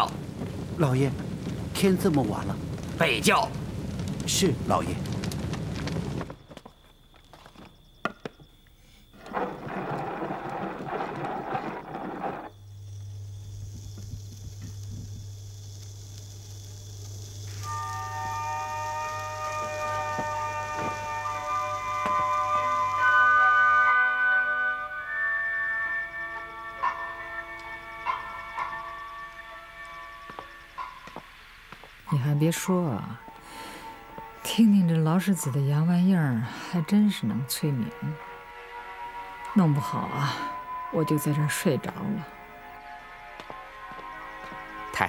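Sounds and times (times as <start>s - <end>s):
record surface hiss and hum: 9.1s - 34.4s
slow melody from gramophone: 17.6s - 27.8s.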